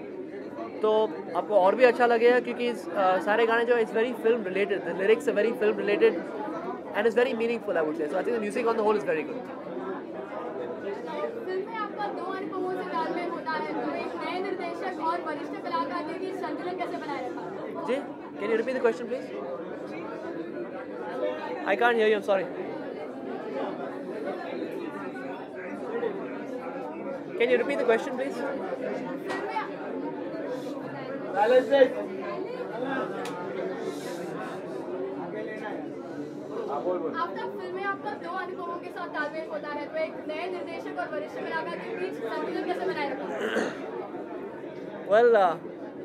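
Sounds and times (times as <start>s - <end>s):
indistinct chatter: 0.0s - 46.0s
murmur of overlapping voices: 0.0s - 46.0s.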